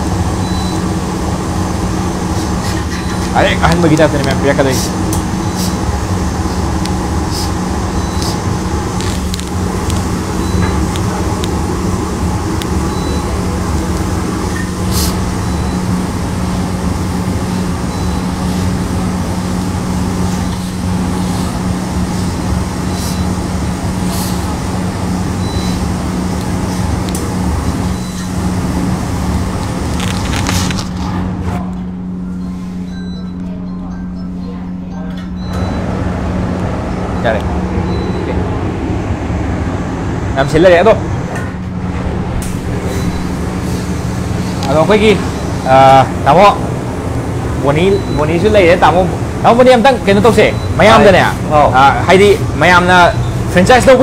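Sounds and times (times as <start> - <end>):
blower motor humming: 0.0 - 54.0.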